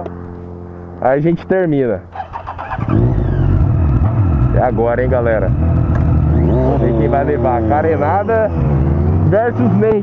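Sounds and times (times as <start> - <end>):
motorcycle engine revving: 2.1 - 10.0.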